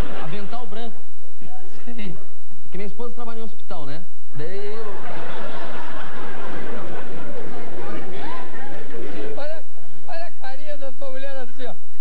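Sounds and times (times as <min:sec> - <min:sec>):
audience laughing: 0:00.0 - 0:00.8, 0:04.6 - 0:10.1
man laughing heartily: 0:04.8 - 0:09.6.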